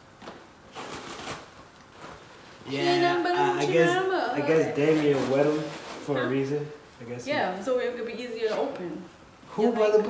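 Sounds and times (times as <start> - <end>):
frozen fabric crackling: 0.6 - 6.5.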